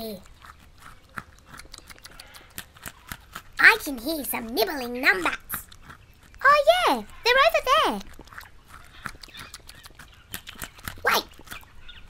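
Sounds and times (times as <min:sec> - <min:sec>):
small animals chewing: 0:00.0 - 0:12.0.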